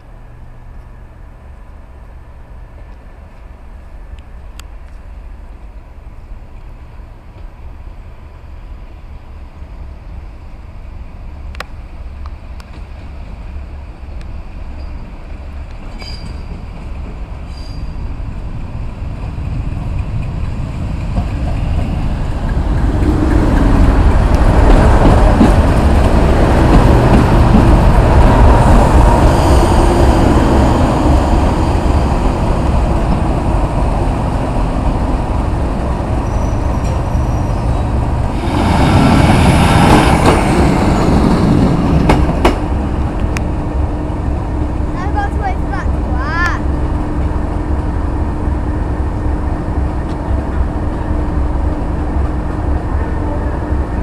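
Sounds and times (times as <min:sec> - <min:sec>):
diesel locomotive engine running: 0:18.1 - 0:54.0.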